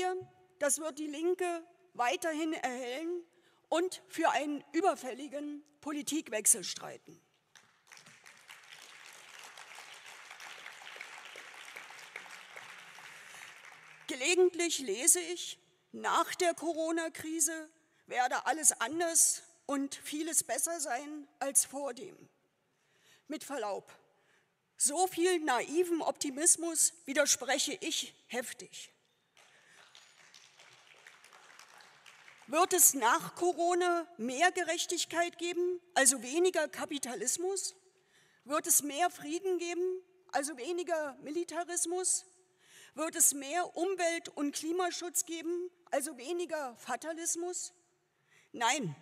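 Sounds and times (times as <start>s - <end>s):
light applause: 7.5s - 14.1s, 29.4s - 32.5s.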